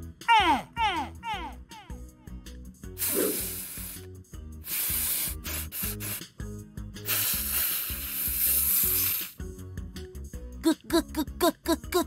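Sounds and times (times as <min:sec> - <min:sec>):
light music with low bass: 0:00.0 - 0:12.0
cartoon hissing puffs: 0:03.0 - 0:06.4, 0:07.0 - 0:09.4.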